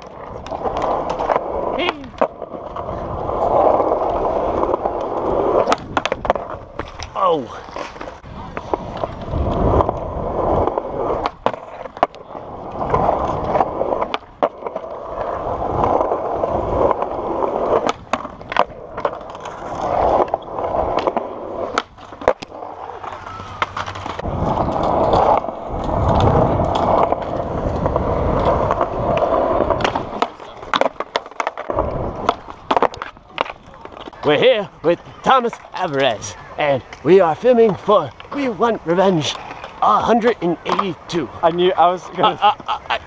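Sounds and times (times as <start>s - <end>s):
skateboard clacks: 0.0s - 43.0s
skateboard wheels rolling on concrete: 0.0s - 43.0s.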